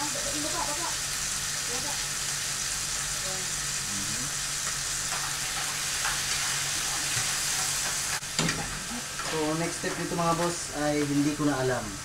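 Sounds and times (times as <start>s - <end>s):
chicken sizzling in frying pan: 0.0s - 12.0s.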